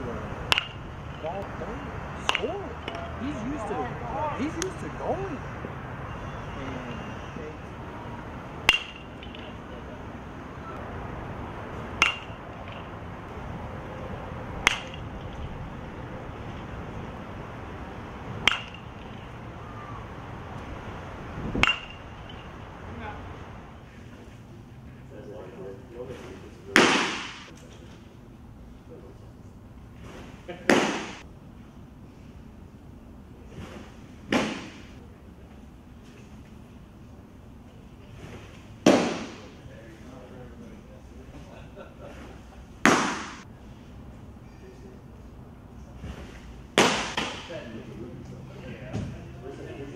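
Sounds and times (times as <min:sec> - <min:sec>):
baseball bat hitting ball: 0:00.4 - 0:01.3, 0:02.2 - 0:03.1, 0:08.6 - 0:09.7, 0:11.7 - 0:13.5, 0:14.6 - 0:15.8, 0:17.9 - 0:20.0, 0:21.4 - 0:22.8, 0:26.7 - 0:27.5, 0:30.7 - 0:31.2, 0:34.3 - 0:34.9, 0:38.8 - 0:39.5, 0:42.8 - 0:43.4, 0:46.8 - 0:47.6
baseball smacking into mitt: 0:18.4 - 0:19.2, 0:26.8 - 0:27.5, 0:30.7 - 0:31.2, 0:34.3 - 0:34.9, 0:38.8 - 0:39.5, 0:42.8 - 0:43.4, 0:46.8 - 0:47.5.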